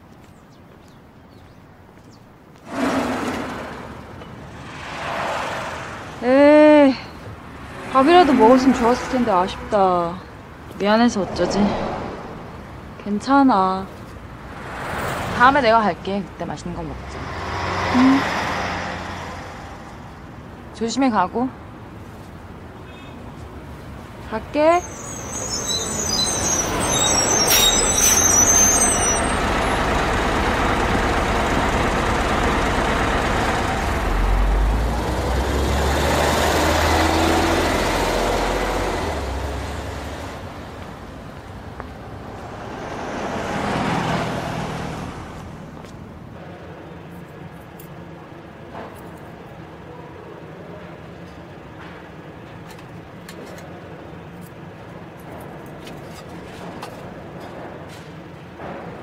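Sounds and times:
bus engine rumbling: 2.6s - 59.0s
vehicle passing: 2.7s - 20.3s, 29.5s - 46.1s
bus brake squeal: 24.6s - 29.6s.

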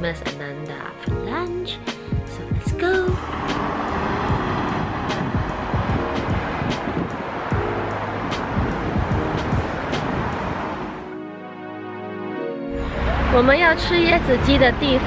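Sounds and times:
faint background music: 0.0s - 6.8s
cars driving past: 3.0s - 11.2s, 12.7s - 15.0s.

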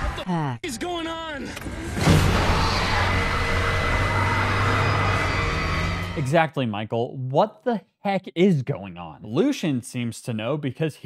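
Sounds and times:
dramatic film score: 0.0s - 6.3s
car engine revving hard: 1.8s - 6.3s.

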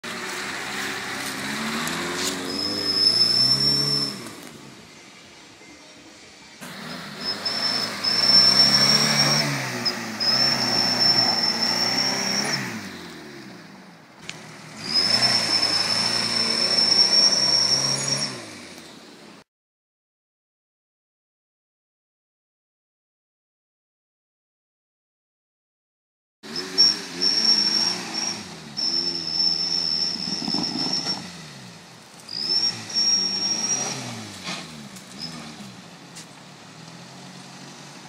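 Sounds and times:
engine revving hard: 0.0s - 4.4s, 6.6s - 18.8s, 26.4s - 35.9s
wheels spinning in mud: 0.0s - 5.0s, 6.6s - 13.3s, 14.2s - 19.0s, 26.5s - 38.0s.

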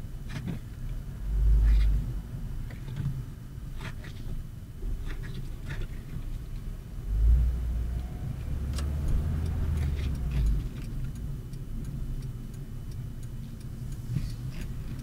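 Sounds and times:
car engine and road noise: 0.0s - 15.0s
turn signal ticking: 0.1s - 15.0s.

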